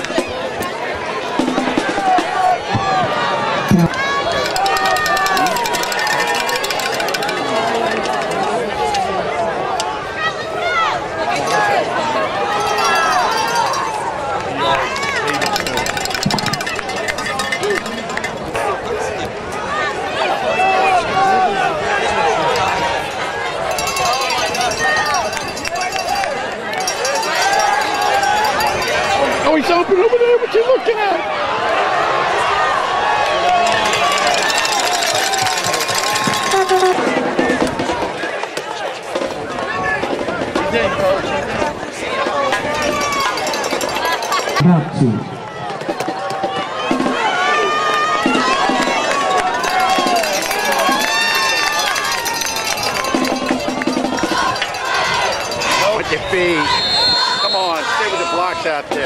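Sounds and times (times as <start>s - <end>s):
crowd babble: 0.0s - 59.0s.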